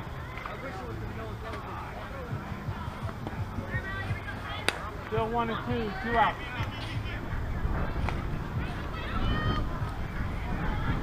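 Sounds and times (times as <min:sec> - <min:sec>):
faint voices chattering: 0:00.0 - 0:11.0
ball hitting mitt crack: 0:04.6 - 0:05.1.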